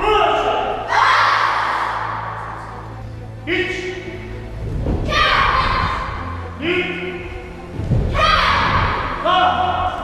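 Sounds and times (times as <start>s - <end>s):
people shouting in an echoing hall: 0.0s - 4.3s, 5.0s - 10.0s.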